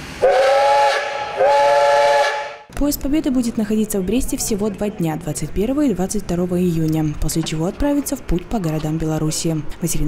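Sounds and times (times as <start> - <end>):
steam locomotive whistle: 0.2 - 2.7.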